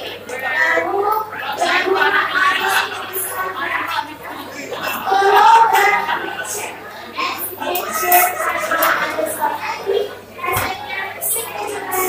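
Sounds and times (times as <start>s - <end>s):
busy room background: 0.0s - 12.0s.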